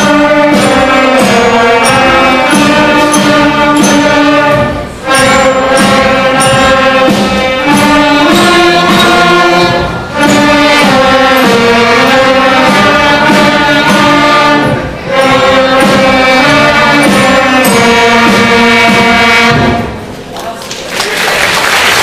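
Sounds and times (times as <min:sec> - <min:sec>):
concert band playing chords: 0:00.0 - 0:20.1.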